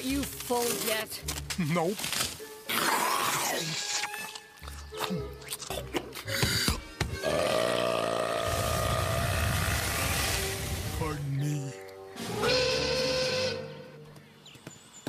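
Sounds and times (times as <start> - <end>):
film score: 0.0 - 15.0.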